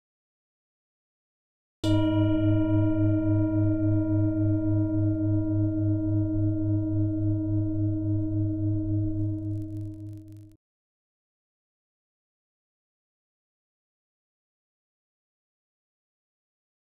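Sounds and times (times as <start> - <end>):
struck bell-like metal tone: 1.8 - 10.5
low wavering hum: 2.2 - 10.6.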